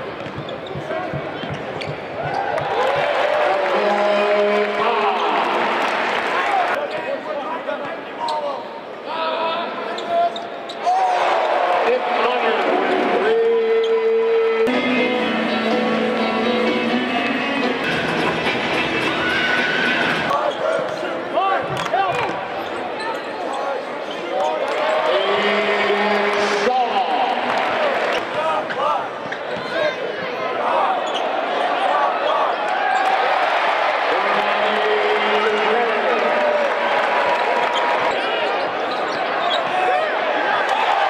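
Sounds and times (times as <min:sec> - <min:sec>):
crowd voices: 0:00.0 - 0:41.0
sneaker squeaks: 0:00.2 - 0:02.5, 0:22.1 - 0:24.6, 0:31.0 - 0:31.3, 0:37.7 - 0:39.8
music over sound system: 0:14.7 - 0:20.3.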